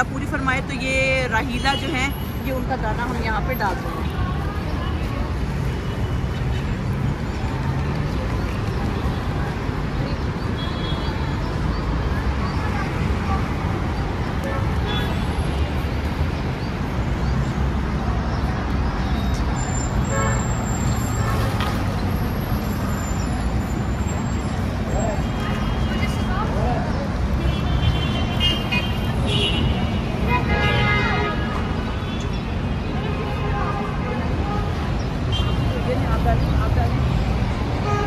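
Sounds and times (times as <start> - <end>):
road traffic rumble: 0.0 - 38.0.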